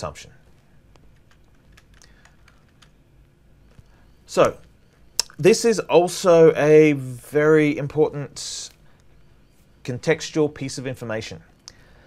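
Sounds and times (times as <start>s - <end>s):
faint computer keyboard tapping: 0.5s - 3.0s.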